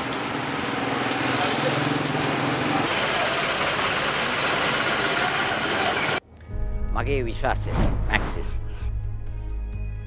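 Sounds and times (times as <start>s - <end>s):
outdoor noise: 0.0s - 6.5s
rattling engine: 1.5s - 6.2s.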